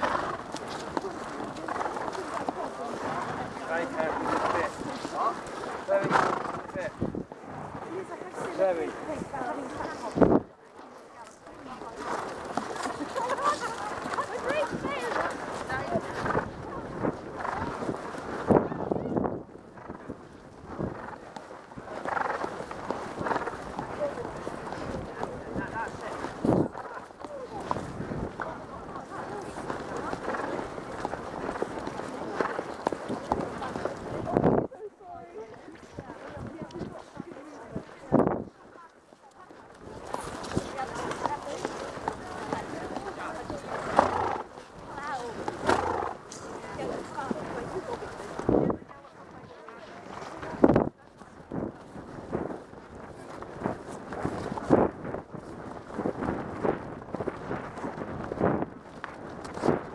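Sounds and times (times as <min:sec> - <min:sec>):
voices of riders: 0:00.0 - 0:58.0
horse hoofbeats on soft ground: 0:00.0 - 0:59.9.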